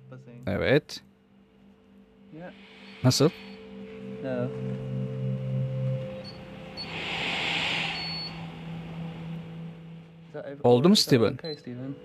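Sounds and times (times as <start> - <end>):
soft background music: 0.0 - 12.0
brief hiss: 2.4 - 3.9, 6.7 - 9.9.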